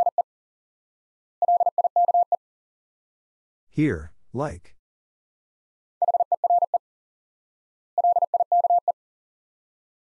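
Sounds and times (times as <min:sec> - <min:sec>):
morse code beeping: 0:00.0 - 0:00.2, 0:01.4 - 0:02.4, 0:08.0 - 0:09.0.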